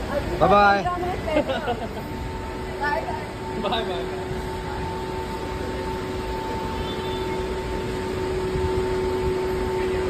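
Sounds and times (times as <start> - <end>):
airport terminal background hum: 0.0 - 10.0
constant tones: 0.0 - 10.0.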